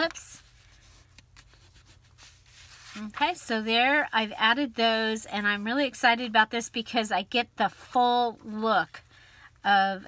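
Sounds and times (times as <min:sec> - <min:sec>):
hands rubbing paper: 0:00.0 - 0:05.9
low steady hum: 0:00.0 - 0:10.0.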